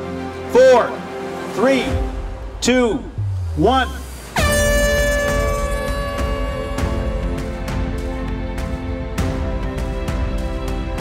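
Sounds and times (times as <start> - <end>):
air horn blast: 4.4 - 8.4.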